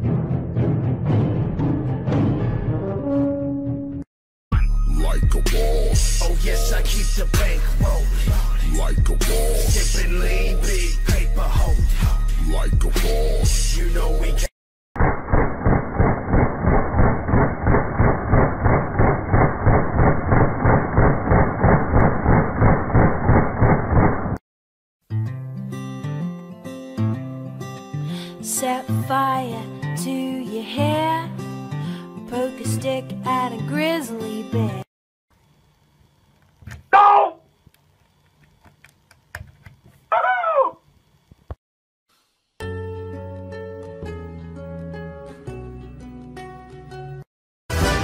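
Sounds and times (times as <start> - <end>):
gun firing rapid shots: 15.0 - 22.4
loud rising and falling cry: 40.1 - 40.8.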